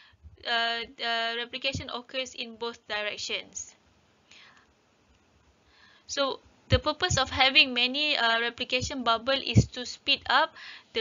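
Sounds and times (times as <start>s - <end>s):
faint breaths: 4.2s - 4.8s, 5.6s - 6.1s, 10.6s - 11.0s.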